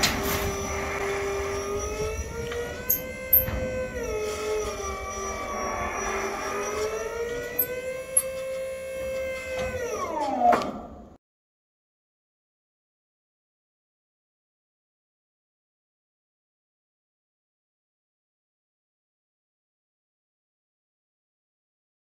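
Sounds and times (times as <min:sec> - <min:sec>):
hydraulic pump motor whine: 0:00.0 - 0:11.2.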